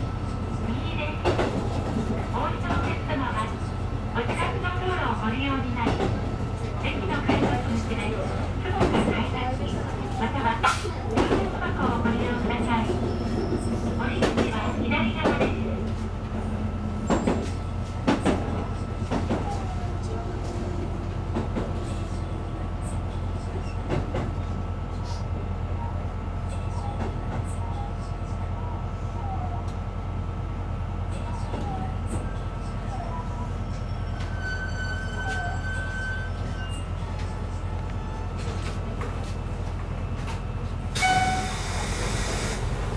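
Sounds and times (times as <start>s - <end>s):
railcar engine drone: 0.0s - 42.9s.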